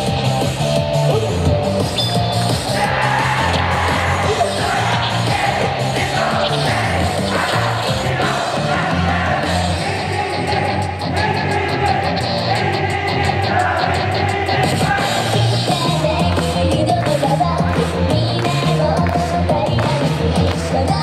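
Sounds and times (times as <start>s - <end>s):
pop song through pa speaker: 0.0s - 21.0s.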